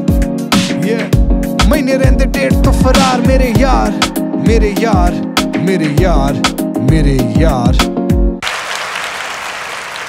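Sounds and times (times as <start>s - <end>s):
song beat and bass: 0.0s - 8.4s
crowd applause: 8.4s - 10.0s.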